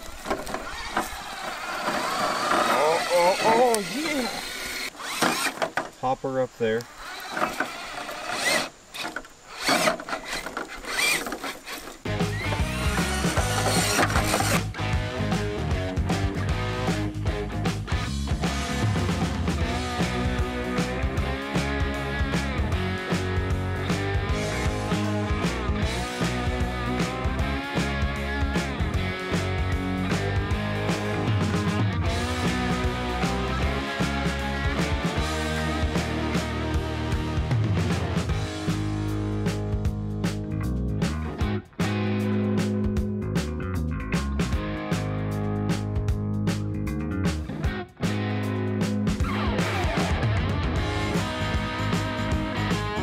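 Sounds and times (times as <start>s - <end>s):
rc truck scraping over rock: 0.0s - 5.9s, 6.7s - 14.7s
background music with beat: 12.1s - 53.0s.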